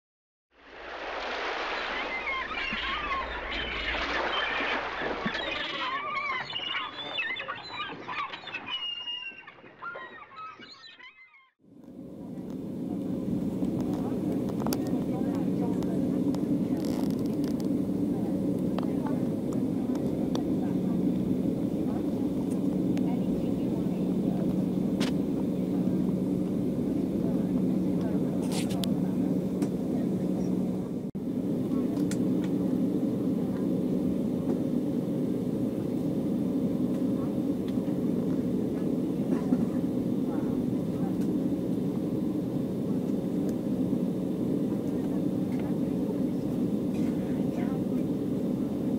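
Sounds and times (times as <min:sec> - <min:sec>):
cabin air hum: 0:11.7 - 0:48.9
jet engines idling: 0:11.7 - 0:48.9.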